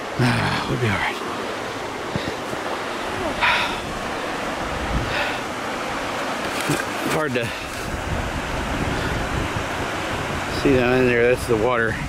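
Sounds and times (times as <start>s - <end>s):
wind rushing on microphone: 1.9s - 12.0s.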